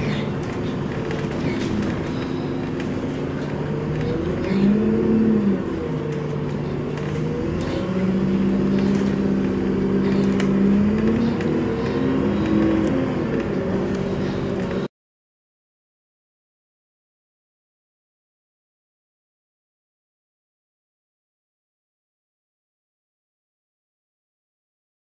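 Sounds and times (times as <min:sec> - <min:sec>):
bus engine running inside bus: 0:00.0 - 0:14.9.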